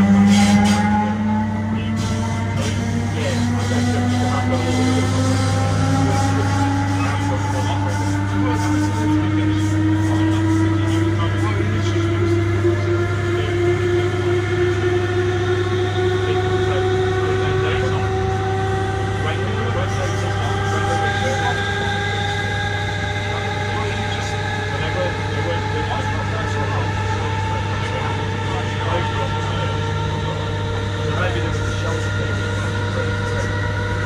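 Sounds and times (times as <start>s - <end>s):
low hum: 0.0s - 34.0s
train rumbling on track: 0.0s - 34.0s
train traction motor whine: 0.0s - 34.0s.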